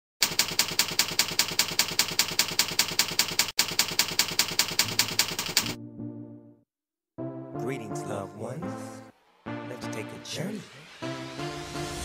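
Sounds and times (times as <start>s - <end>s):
typewriter keystrokes: 0.2s - 5.8s.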